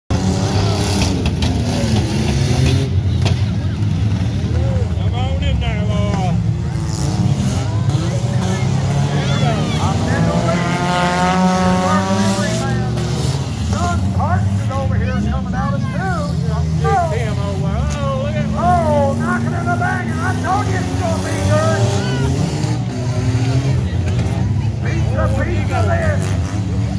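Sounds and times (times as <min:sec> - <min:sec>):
race car engines revving: 0:00.1 - 0:26.9.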